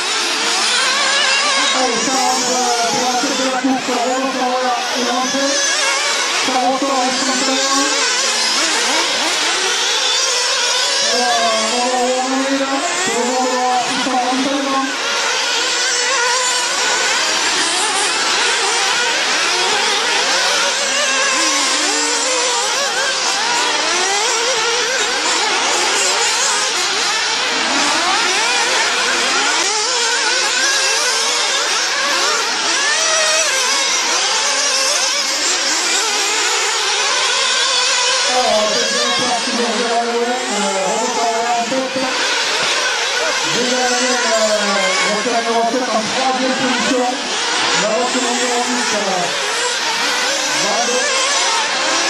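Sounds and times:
small engines revving high-pitched: 0.0s - 52.0s.

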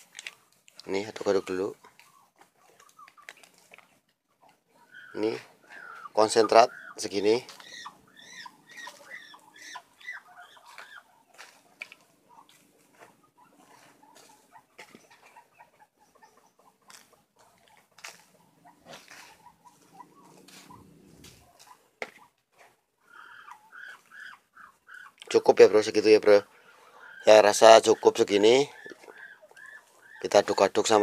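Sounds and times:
light ticks and rustles: 0.0s - 4.6s, 16.1s - 22.8s
birds chirping: 0.4s - 22.4s, 23.0s - 31.0s.

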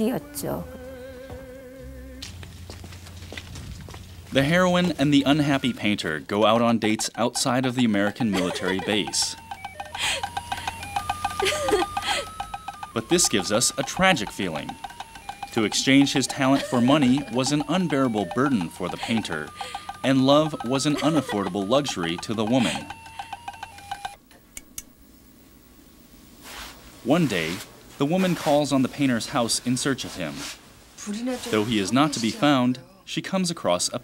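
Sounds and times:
faint steady low hum: 0.0s - 34.0s
fast regular ticking: 4.0s - 24.9s
high electronic tones: 6.6s - 24.2s
woman laughing softly: 7.8s - 12.5s, 16.3s - 17.4s, 19.0s - 20.0s, 20.6s - 21.8s, 22.4s - 23.3s.

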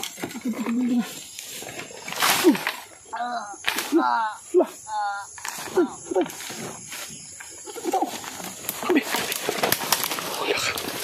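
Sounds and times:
dry bamboo leaves rustling: 0.0s - 4.5s, 5.3s - 11.0s
dove cooing: 10.2s - 11.0s.

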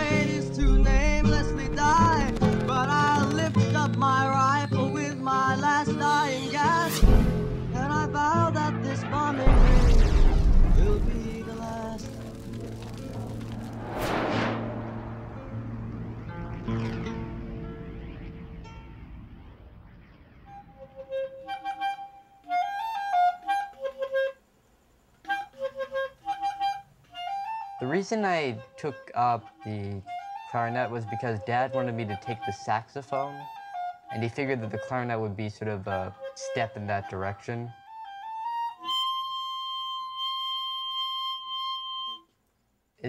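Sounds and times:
solo clarinet melody: 20.9s - 24.4s, 37.8s - 42.3s.

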